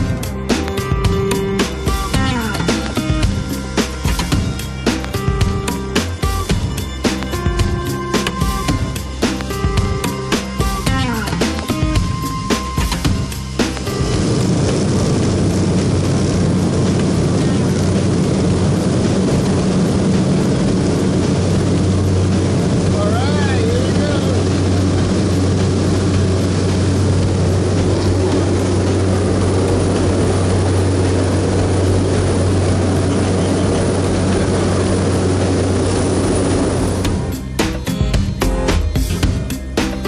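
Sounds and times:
propeller plane engine drone: 0.0s - 40.0s.

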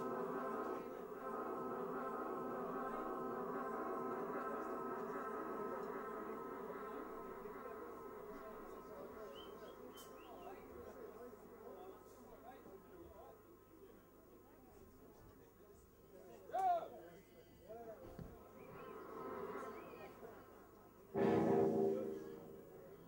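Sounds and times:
buzzing drone of amplified instruments: 21.1s - 23.0s.

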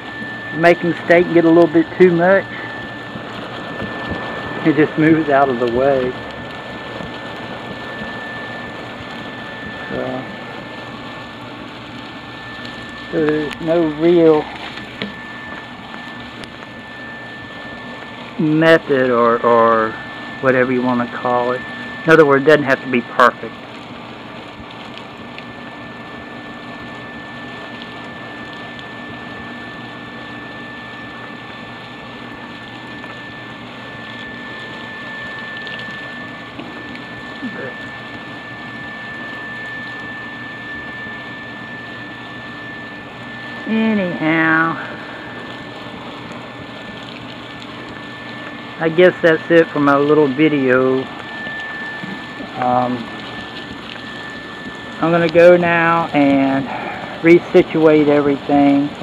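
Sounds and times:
insulation blower rushing air: 0.0s - 59.0s
thin high whine: 0.0s - 59.0s
high-pitched tone: 12.4s - 23.4s, 33.9s - 45.7s, 48.0s - 58.9s.

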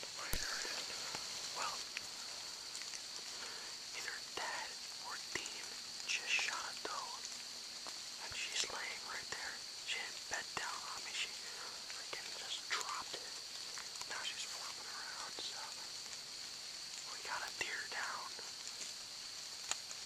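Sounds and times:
person whispering: 0.0s - 2.0s, 3.2s - 7.3s, 8.2s - 16.0s, 17.0s - 18.6s.

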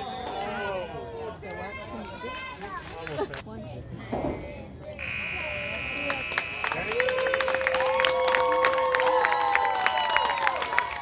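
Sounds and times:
scoreboard buzzer: 5.0s - 7.1s.

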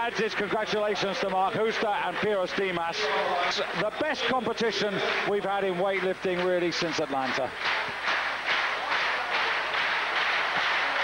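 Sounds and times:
large crowd applauding: 0.0s - 11.0s.

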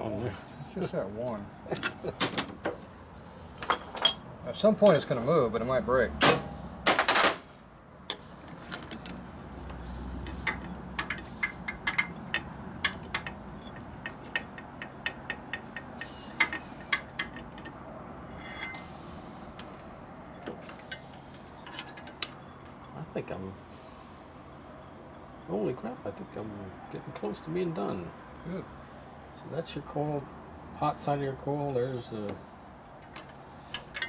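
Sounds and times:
clutch plates clicking and clinking: 10.2s - 17.8s, 33.0s - 34.0s
metal knocks: 10.2s - 18.8s.

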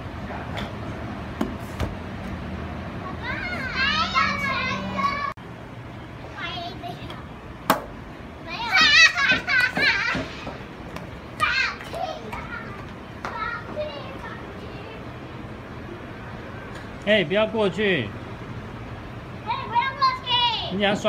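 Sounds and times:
children shouting and laughing: 2.9s - 5.4s, 8.4s - 16.8s, 19.4s - 21.0s.

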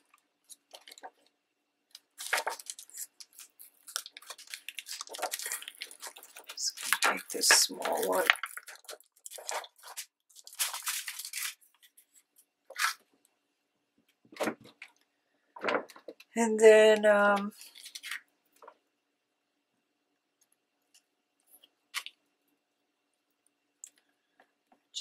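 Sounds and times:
plastic sheet crinkling: 0.0s - 1.2s, 2.0s - 13.0s, 17.6s - 18.3s.

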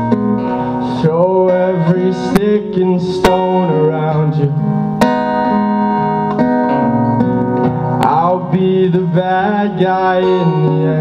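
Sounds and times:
strummed acoustic guitar: 0.0s - 11.0s
man singing: 0.6s - 4.8s, 8.0s - 11.0s.

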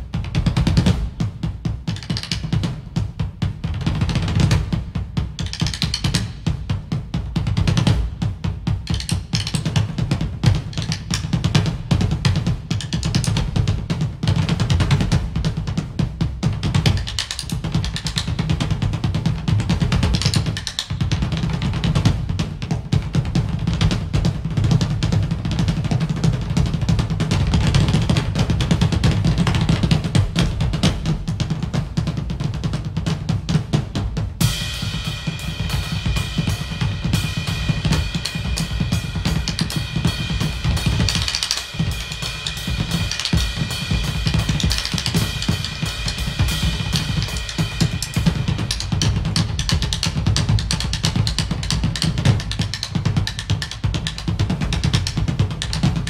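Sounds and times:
fast drumming: 0.0s - 56.0s
cymbals crashing: 34.4s - 49.3s.

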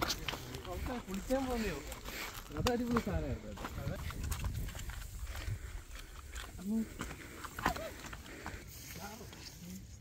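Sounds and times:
footsteps crunching on gravel: 0.0s - 9.8s
wind rumble on microphone: 2.6s - 6.1s.

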